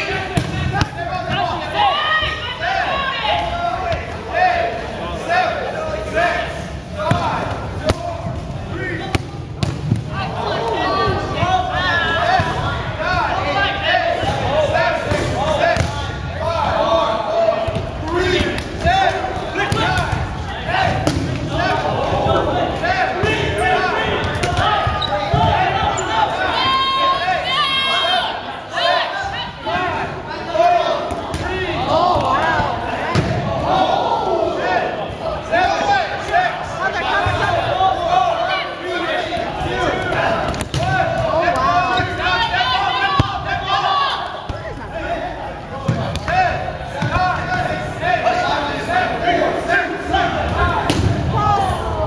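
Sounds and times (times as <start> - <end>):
dodgeballs smacking and bouncing: 0.0 - 2.3, 7.0 - 13.4, 14.1 - 16.8, 17.5 - 25.8, 31.0 - 33.8, 39.2 - 42.5, 43.1 - 43.6, 44.2 - 45.0, 45.7 - 47.9, 50.4 - 52.0
crowd shouting: 0.0 - 52.0.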